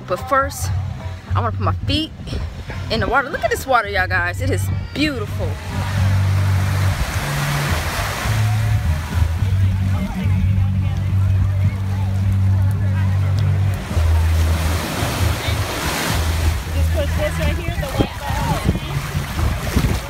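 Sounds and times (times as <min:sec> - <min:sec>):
deep bass music: 0:00.0 - 0:20.0
small waves breaking on beach: 0:05.4 - 0:09.2, 0:13.8 - 0:20.0.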